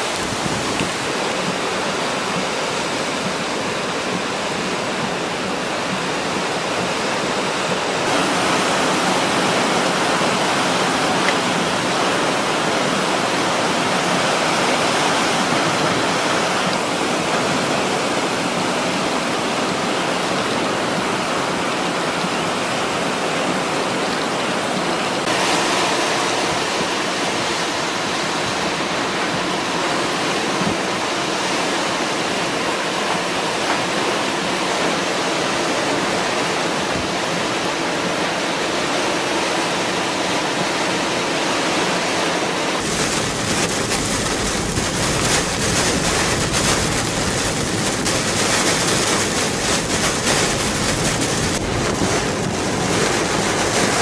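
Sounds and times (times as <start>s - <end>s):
heavy rain: 0.0s - 54.0s
wind: 0.0s - 54.0s.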